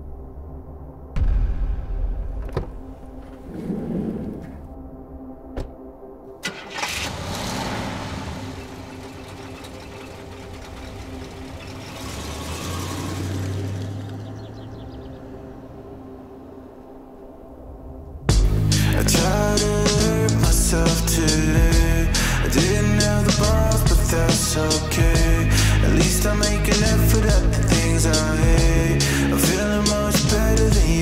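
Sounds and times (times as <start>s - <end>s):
low drone: 0.0s - 31.0s
car engine starting and running: 6.3s - 31.0s.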